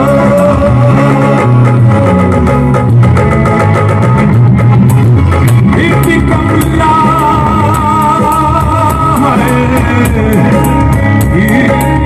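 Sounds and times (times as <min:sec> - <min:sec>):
person singing: 0:00.0 - 0:02.1, 0:05.6 - 0:12.0
live band playing rock music: 0:00.0 - 0:12.0.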